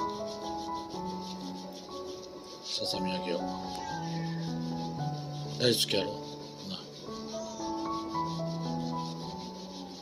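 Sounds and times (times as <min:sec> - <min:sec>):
glove rubbing over fur: 0:00.0 - 0:10.0
slow background music: 0:00.0 - 0:10.0.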